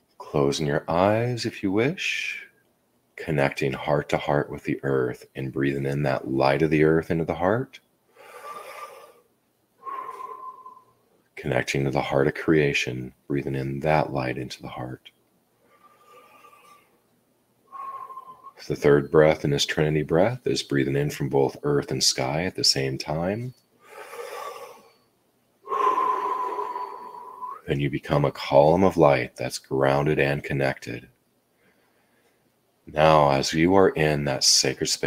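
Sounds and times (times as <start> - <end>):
man breathing: 8.1 - 11.1, 15.6 - 17.0, 17.7 - 18.6, 23.8 - 27.6, 31.5 - 32.5
long breath out with whistle: 9.8 - 11.0, 17.7 - 18.6, 25.7 - 27.6.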